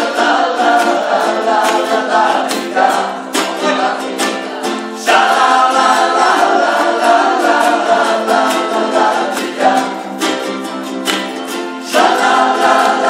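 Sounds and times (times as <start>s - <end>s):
group singing together: 0.0s - 13.0s
ukuleles strummed in rhythm: 0.0s - 13.0s.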